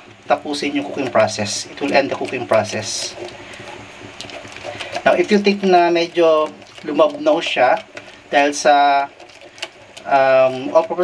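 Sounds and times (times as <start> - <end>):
spatula stirring eggs in pot: 0.0 - 11.0.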